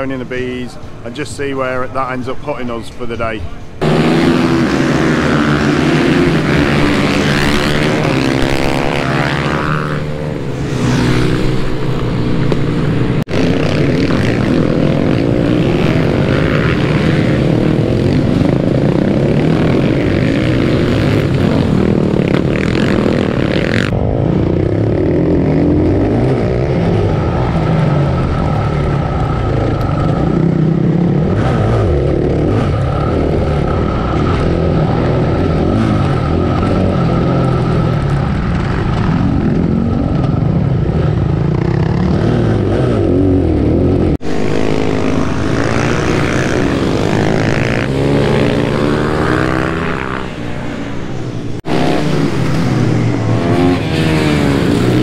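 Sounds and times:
motorbikes racing past: 0.0 - 55.0
motorbike engine revving: 3.8 - 55.0.

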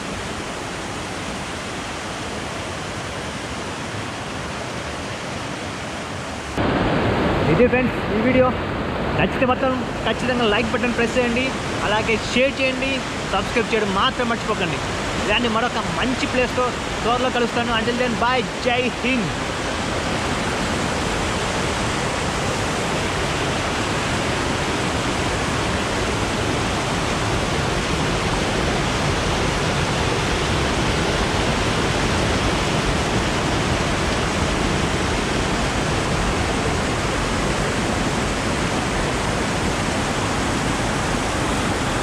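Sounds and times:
stream rushing over boulders: 0.0 - 42.0.

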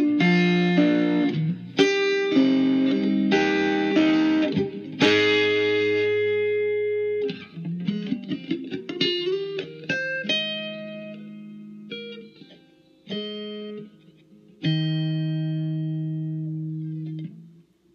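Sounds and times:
electric guitar notes and chords: 0.0 - 17.7.

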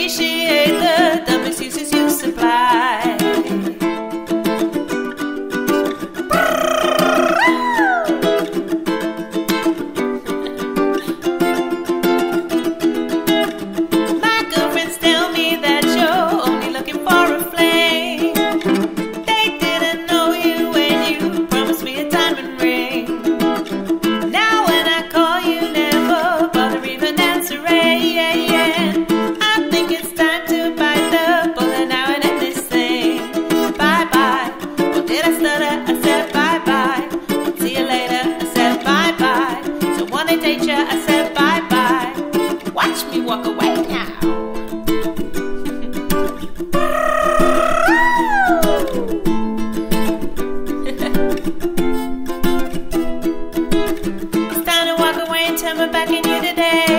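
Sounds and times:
woman singing: 0.0 - 3.9, 6.3 - 8.4, 14.2 - 23.4, 24.2 - 44.4, 46.7 - 49.6, 54.5 - 56.9
ukulele strumming: 0.0 - 56.9.

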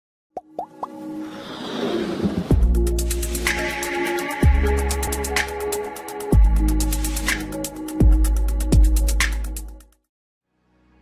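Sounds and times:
intro music: 2.4 - 9.9.

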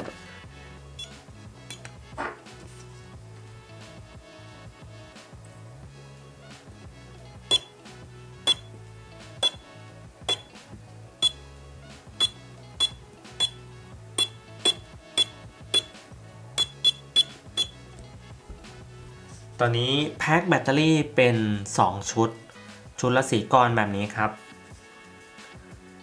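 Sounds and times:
quiet background music: 0.0 - 26.0.

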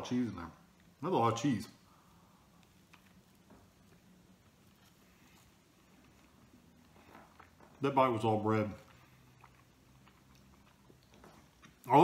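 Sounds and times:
person chewing bread: 1.8 - 12.0.

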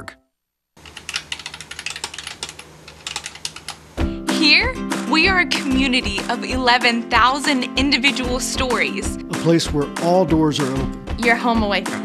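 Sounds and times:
keyboard typing clicks: 0.8 - 3.8.

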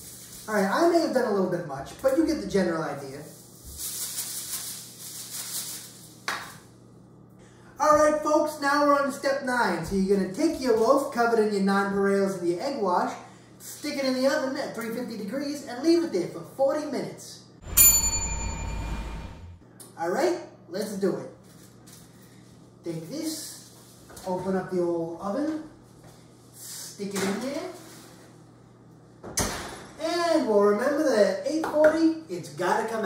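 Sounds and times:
low hum: 17.6 - 19.6
struck chime ringing: 17.6 - 19.6.

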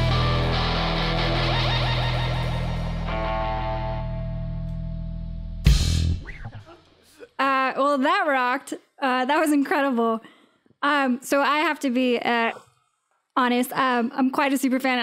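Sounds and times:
rock band final chord: 0.0 - 6.2
distorted electric guitar ringing: 0.0 - 6.6.

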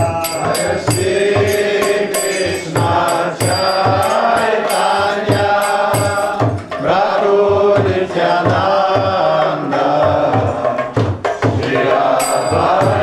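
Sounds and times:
hand cymbals clashing: 0.0 - 6.8, 12.1 - 13.0
hand drum beating: 0.0 - 13.0.

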